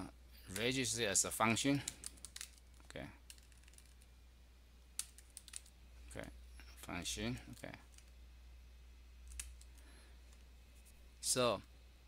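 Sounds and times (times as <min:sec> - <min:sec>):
faint keyboard typing: 0:01.7 - 0:04.1, 0:05.0 - 0:05.8, 0:07.4 - 0:08.2, 0:09.2 - 0:10.5.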